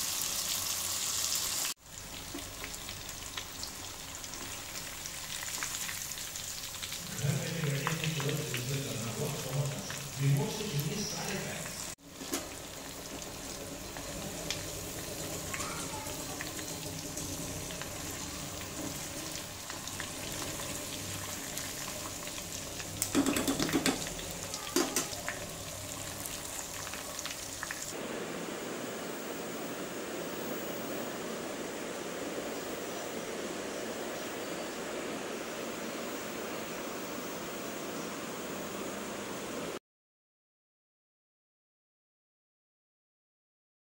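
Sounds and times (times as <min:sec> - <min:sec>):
chicken deep-frying in oil: 0:00.0 - 0:39.8.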